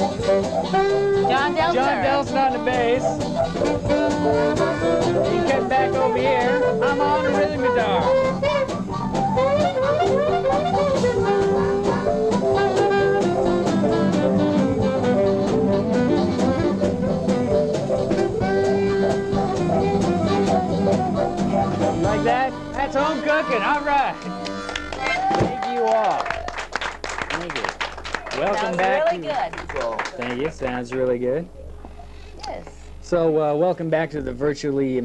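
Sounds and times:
live band playing: 0.0 - 30.8
men talking: 22.1 - 24.2, 28.3 - 29.2, 29.8 - 31.6, 33.0 - 35.0.

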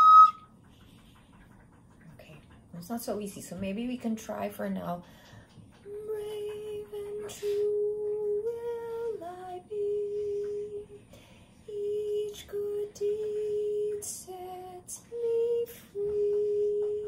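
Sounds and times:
woman softly singing: 5.8 - 17.0.

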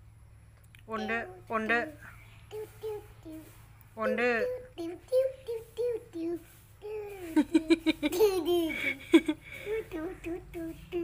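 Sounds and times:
child singing: 2.5 - 3.5, 4.3 - 7.2, 9.7 - 11.0.

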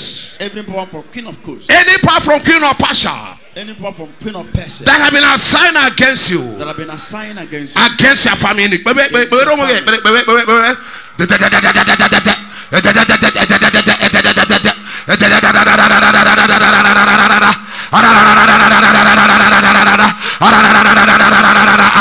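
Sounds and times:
man trilling into a microphone: 9.2 - 22.0.

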